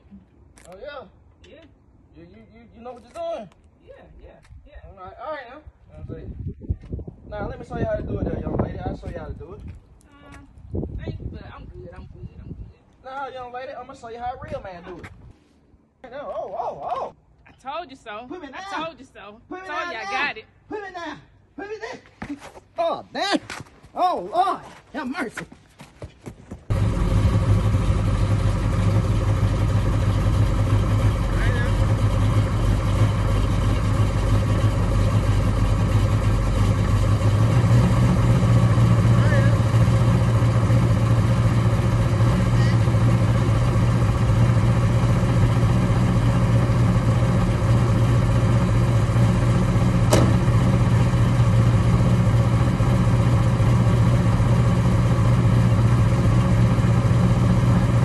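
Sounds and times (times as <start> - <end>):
car engine idling: 26.7 - 58.0
sharp knock: 50.1 - 50.5.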